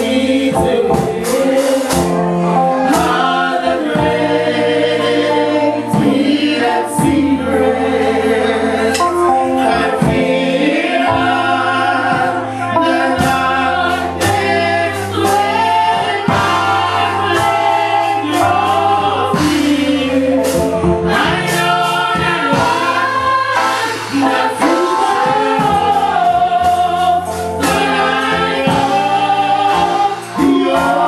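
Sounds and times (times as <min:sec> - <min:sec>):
choir singing: 0:00.0 - 0:31.0.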